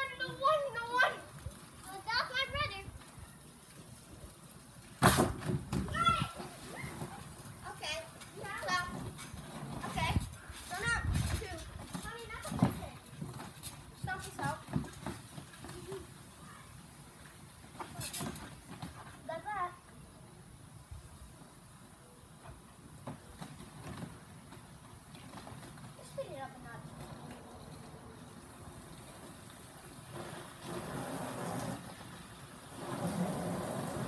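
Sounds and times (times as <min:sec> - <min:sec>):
dull thumps on trampoline mat: 0:05.0 - 0:07.2
children squealing and laughing: 0:05.9 - 0:07.5.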